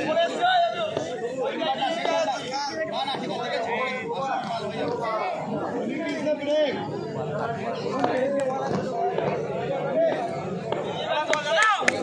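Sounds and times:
people talking and chattering: 0:00.0 - 0:12.0.

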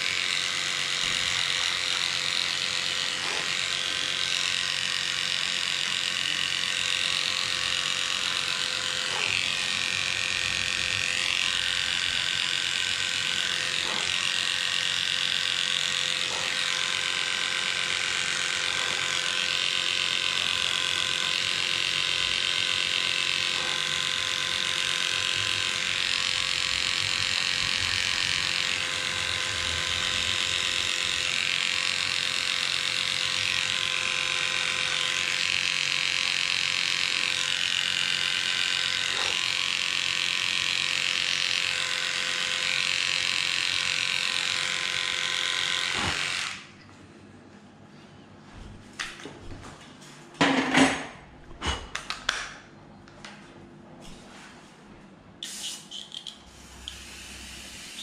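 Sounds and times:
dog clipper buzzing: 0:00.0 - 0:46.8, 0:55.4 - 0:58.0.

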